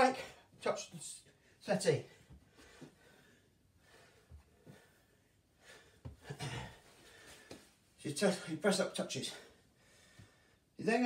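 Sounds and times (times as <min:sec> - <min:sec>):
man breathing with effort: 0:02.2 - 0:07.8, 0:09.4 - 0:10.7.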